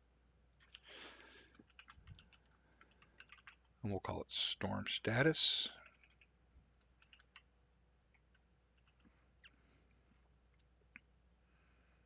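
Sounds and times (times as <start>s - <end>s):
keyboard typing: 1.5s - 3.7s, 5.8s - 7.5s, 8.1s - 9.1s.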